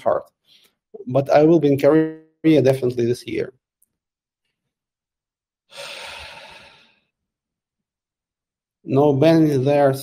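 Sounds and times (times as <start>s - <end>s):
man sighing: 5.7s - 7.0s.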